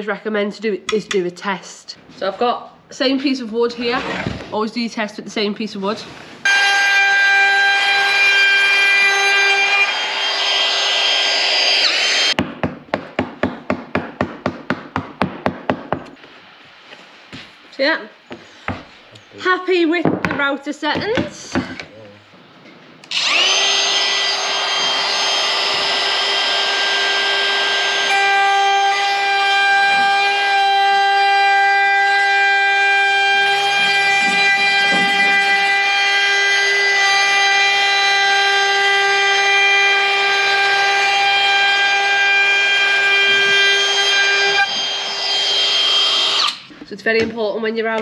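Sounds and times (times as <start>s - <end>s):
router whining while cutting wood: 6.5s - 12.4s, 23.1s - 46.6s.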